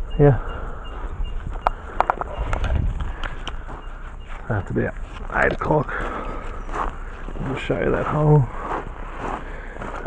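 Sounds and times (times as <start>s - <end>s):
low rumble: 0.7s - 4.3s.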